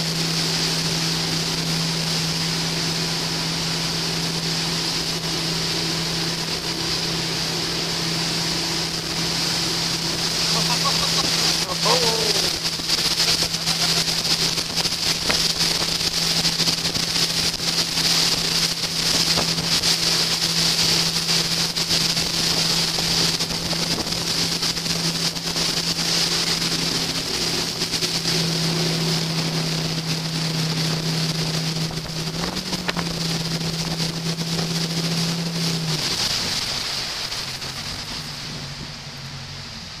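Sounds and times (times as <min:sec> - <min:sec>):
boat engine running: 0:00.0 - 0:40.0
water rushing: 0:00.0 - 0:40.0
wind buffeting microphone: 0:12.4 - 0:39.2.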